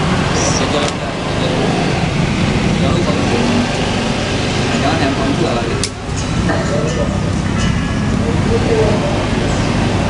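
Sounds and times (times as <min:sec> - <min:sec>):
street traffic noise: 0:00.0 - 0:10.0
men chattering: 0:00.3 - 0:10.0.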